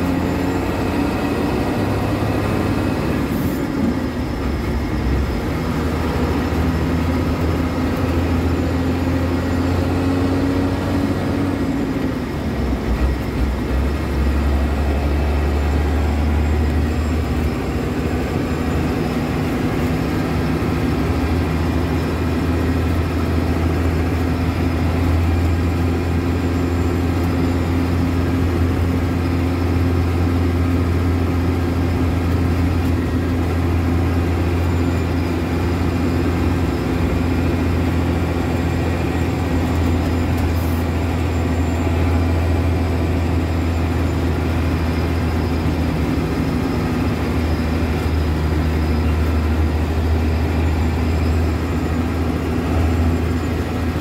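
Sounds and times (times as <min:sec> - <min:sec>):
road noise: 0:00.0 - 0:54.0
truck engine drone: 0:00.0 - 0:54.0.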